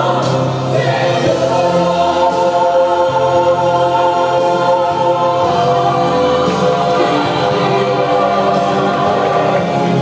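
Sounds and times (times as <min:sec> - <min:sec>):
choir singing long held notes: 0:00.0 - 0:10.0.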